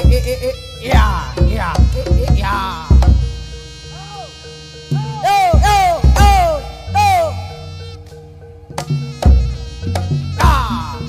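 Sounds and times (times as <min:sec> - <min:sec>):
held buzzy note: 0:00.0 - 0:11.0.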